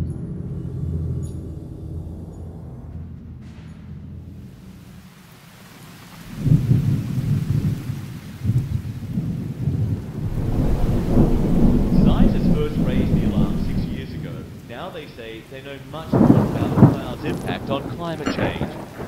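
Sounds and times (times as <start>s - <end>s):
rain falling: 4.2s - 19.0s
thunder rumbling: 6.2s - 19.0s.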